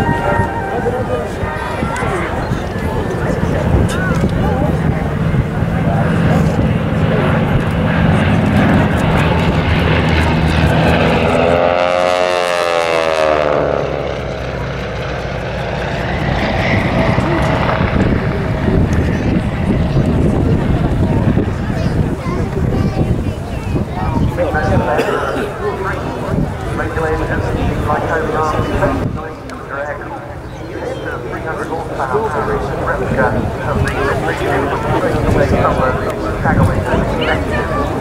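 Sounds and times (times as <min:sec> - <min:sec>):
propeller aircraft engines droning: 0:00.0 - 0:38.0.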